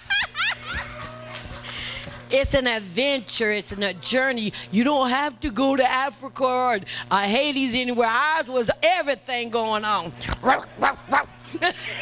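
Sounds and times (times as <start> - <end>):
woman laughing into microphone: 0.0 - 2.3, 10.3 - 12.0.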